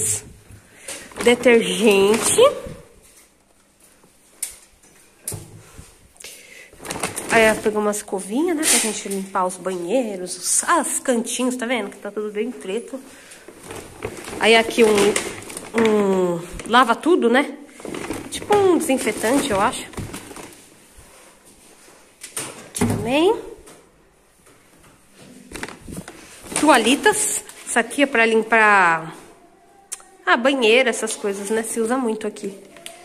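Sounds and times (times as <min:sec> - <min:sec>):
shopping bag rustling: 0:00.8 - 0:03.4, 0:06.7 - 0:09.6, 0:12.2 - 0:22.0, 0:25.1 - 0:28.0.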